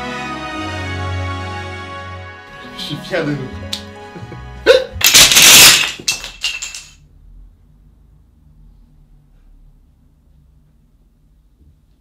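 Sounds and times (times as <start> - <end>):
wooden planks clattering: 5.0 - 6.9.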